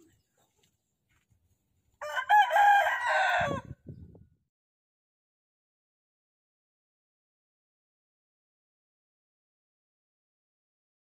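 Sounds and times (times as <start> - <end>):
rooster crowing: 2.0 - 3.8.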